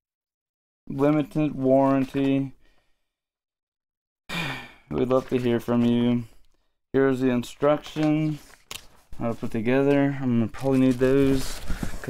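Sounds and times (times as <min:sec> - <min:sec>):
man speaking: 0:00.9 - 0:02.6, 0:04.9 - 0:06.4, 0:07.0 - 0:08.5, 0:09.2 - 0:11.6
man breathing: 0:02.6 - 0:03.2, 0:04.3 - 0:04.9.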